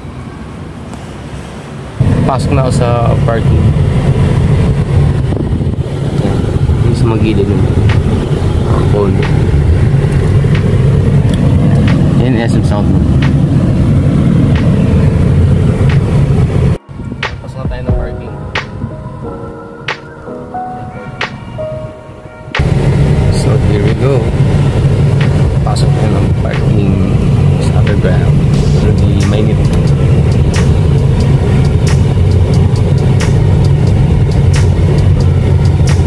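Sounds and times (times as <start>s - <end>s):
car interior rumble: 1.9s - 36.0s
wind buffeting microphone: 2.0s - 20.3s, 22.6s - 36.0s
held electronic music notes: 6.3s - 36.0s
sharp snap: 14.5s - 14.8s, 29.2s - 36.0s.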